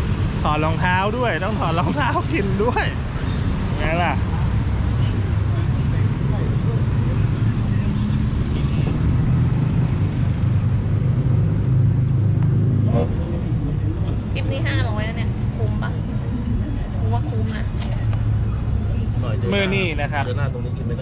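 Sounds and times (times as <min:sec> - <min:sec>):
road traffic rumble: 0:00.0 - 0:21.0.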